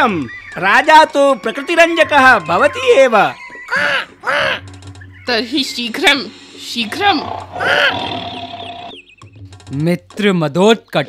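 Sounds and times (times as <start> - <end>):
lion roaring: 6.9 - 8.9.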